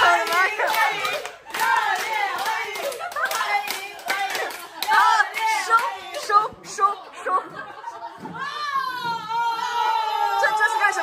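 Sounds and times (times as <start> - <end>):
people clapping: 0.0 - 6.5
excited voices calling out: 0.0 - 7.4, 8.3 - 11.0.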